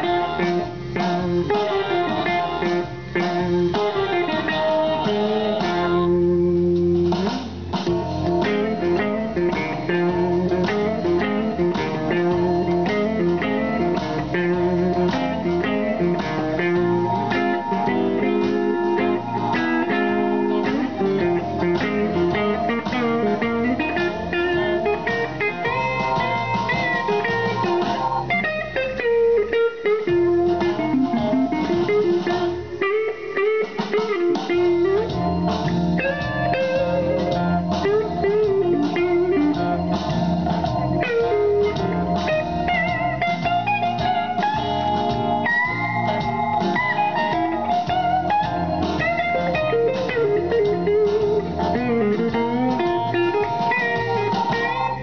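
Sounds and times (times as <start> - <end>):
blues electric guitar lead: 0.0 - 55.0.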